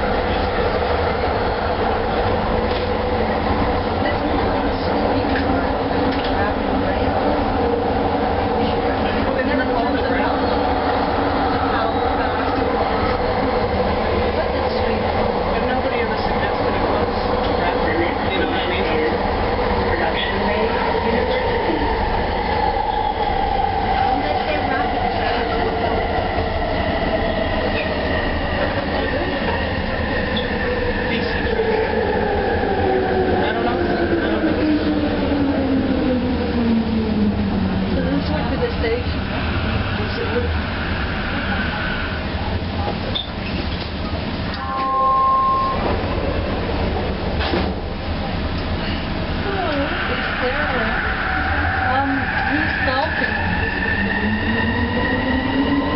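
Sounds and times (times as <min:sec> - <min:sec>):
train wheels rumbling on track: 0:00.0 - 0:55.9.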